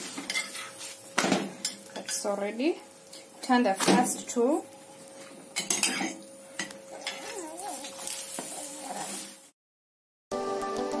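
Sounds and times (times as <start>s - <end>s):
faint sizzling: 0.0s - 9.6s.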